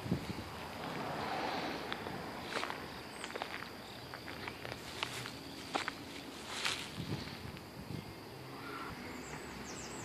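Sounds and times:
footsteps on pavement: 0.0 - 7.7.

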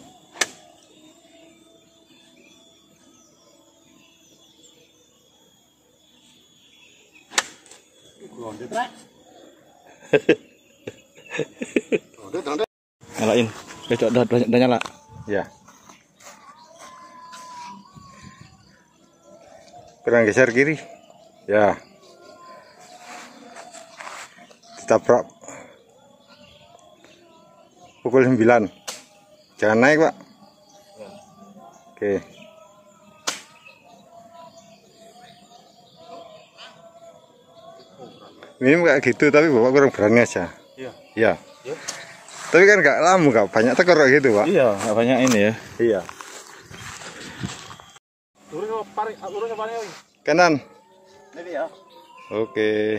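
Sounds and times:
outdoor background hiss: 0.0 - 36.5
distant birds calling: 0.0 - 52.9
footsteps on turf: 44.2 - 48.0.

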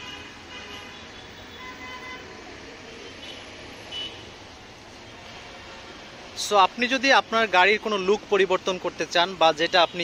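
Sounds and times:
road traffic noise: 0.0 - 10.0.

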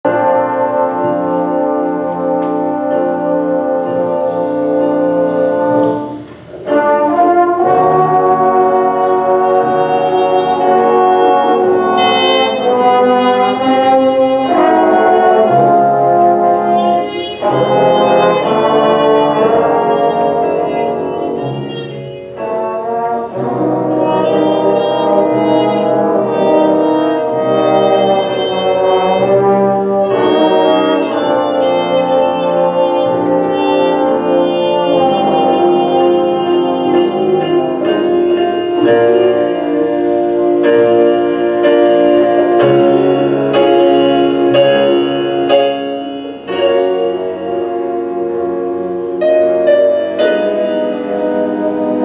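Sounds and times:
jazz band playing: 0.0 - 52.0.

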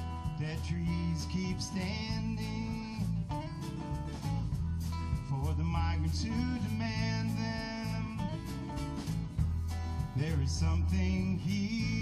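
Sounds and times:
drum kit steady beat: 0.0 - 12.0
strummed acoustic guitars: 0.0 - 12.0.

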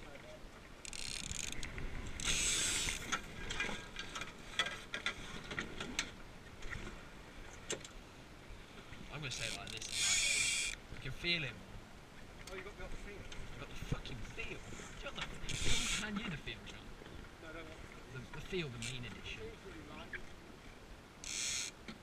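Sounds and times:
clicks and knocks of boat fittings: 0.9 - 6.8.

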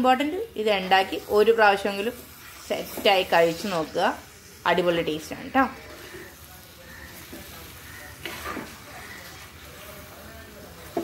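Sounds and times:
low steady sizzle: 0.0 - 11.0
spoon stirring in pot: 5.7 - 11.0
spoon scraping pot: 7.2 - 9.9.

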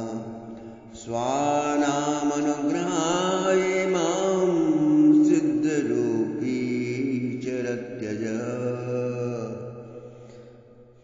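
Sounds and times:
man chanting slow melody: 0.0 - 10.2.

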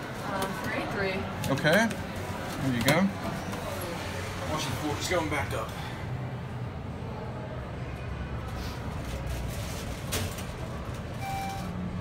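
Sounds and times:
elevator car humming: 10.2 - 12.0
elevator chime: 11.2 - 11.8.

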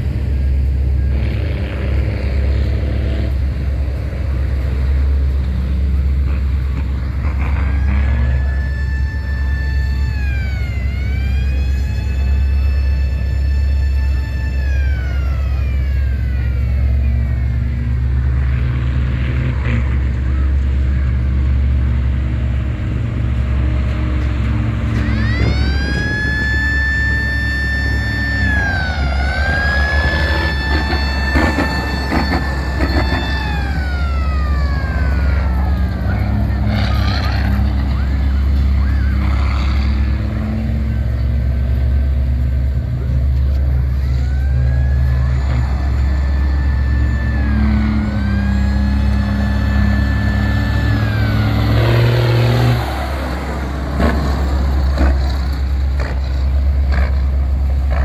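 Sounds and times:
high whine: 0.0 - 56.9
truck engine rumbling: 0.0 - 58.0.

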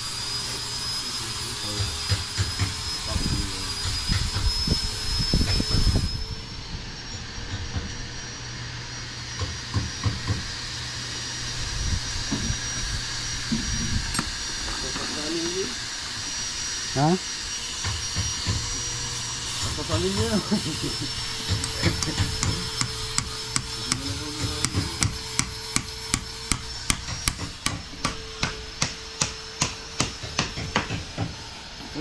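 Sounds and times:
sharp hammer strikes: 21.5 - 31.3.

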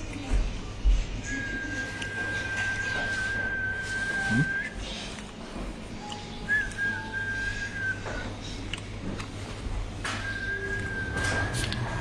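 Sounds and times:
steady high whistling tone: 1.3 - 4.8, 10.1 - 12.0.

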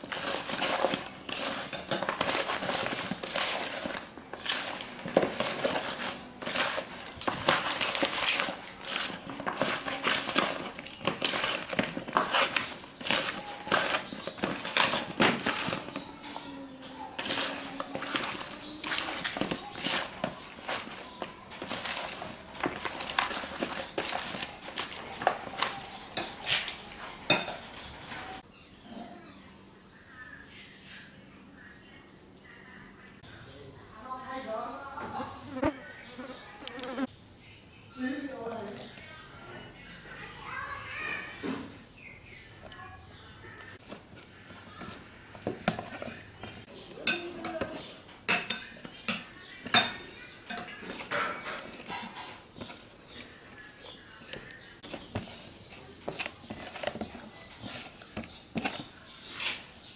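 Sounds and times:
hand mixing wet batter: 0.0 - 28.5, 38.3 - 59.9.

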